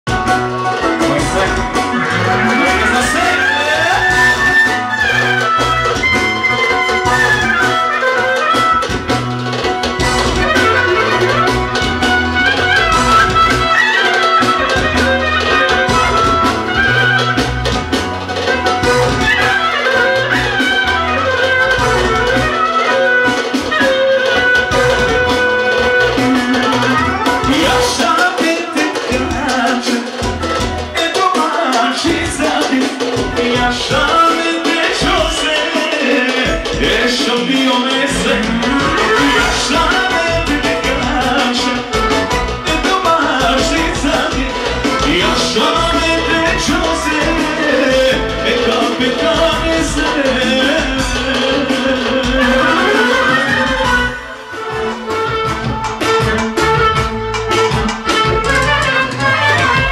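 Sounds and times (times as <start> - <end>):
clarinet melody: 0.0 - 59.9
live band music: 0.0 - 59.9.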